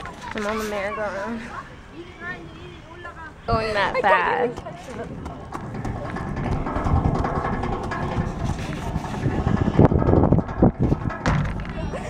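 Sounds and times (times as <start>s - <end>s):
wind rumble on microphone: 3.4s - 12.0s
sharp knock: 5.5s - 12.0s.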